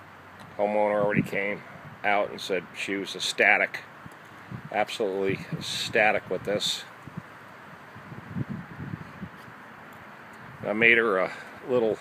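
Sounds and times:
wind noise on microphone: 0:00.9 - 0:02.1, 0:04.4 - 0:09.6, 0:10.4 - 0:11.0.

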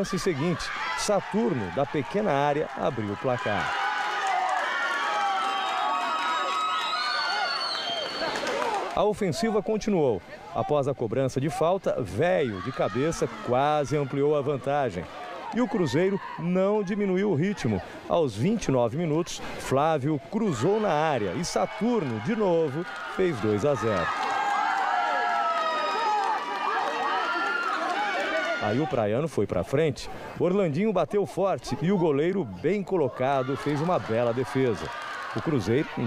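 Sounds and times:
crowd shouting and cheering: 0:00.0 - 0:19.1, 0:19.7 - 0:29.2, 0:30.1 - 0:36.0.

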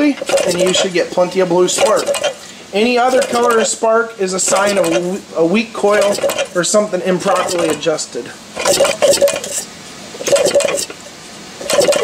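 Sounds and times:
engine flywheel clattering spin: 0:00.0 - 0:03.8, 0:05.9 - 0:07.9, 0:10.2 - 0:11.0, 0:11.6 - 0:12.0.

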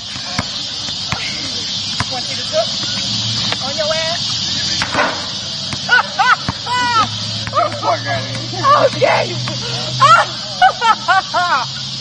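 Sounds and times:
basketball bouncing on asphalt: 0:00.0 - 0:09.7
faint voices: 0:00.0 - 0:10.8
high drone of insects: 0:00.0 - 0:12.0.

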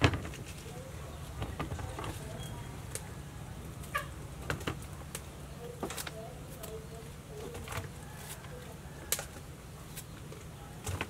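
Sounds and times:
fowl-like bird call: 0:03.9 - 0:04.2
clicks from plastic basket: 0:04.5 - 0:06.8.

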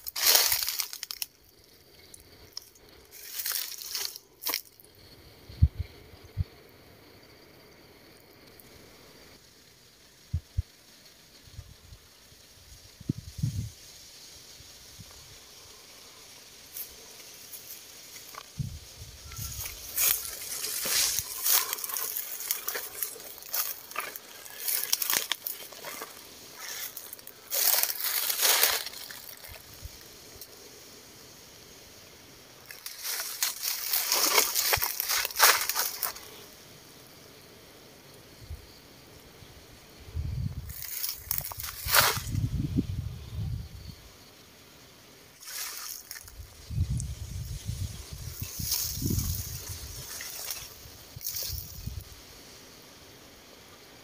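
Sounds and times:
footsteps crunching through dry leaves: 0:00.0 - 0:01.4, 0:03.1 - 0:04.8, 0:16.7 - 0:29.9, 0:32.6 - 0:36.4, 0:40.7 - 0:42.5, 0:45.4 - 0:52.1.

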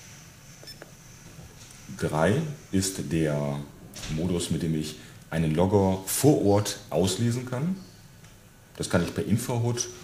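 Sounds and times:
low room noise: 0:00.0 - 0:10.0
keypad beep: 0:00.6 - 0:00.9.

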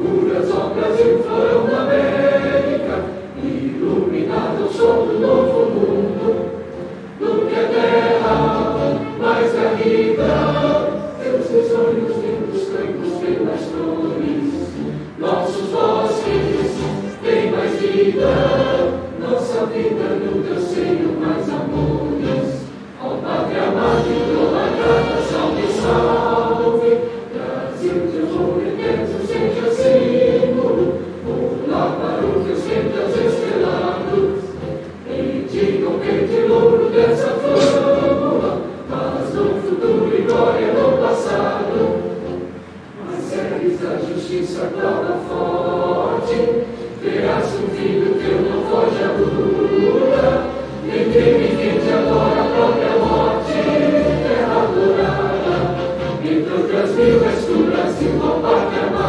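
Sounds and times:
choir singing: 0:00.0 - 0:59.0
instrumental accompaniment: 0:00.0 - 0:59.0.

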